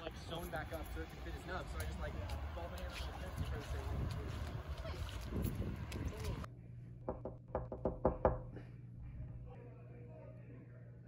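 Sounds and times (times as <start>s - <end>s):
knocking on a door: 7.1s - 8.5s.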